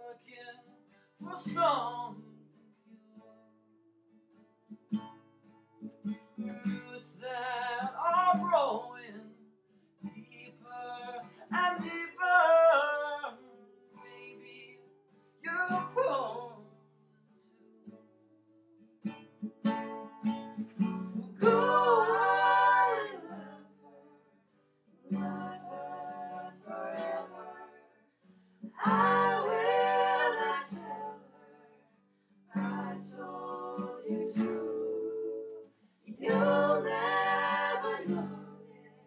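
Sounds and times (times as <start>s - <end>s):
acoustic guitar: 0.0s - 39.0s
person singing: 21.4s - 24.0s, 28.8s - 31.6s, 32.6s - 39.0s.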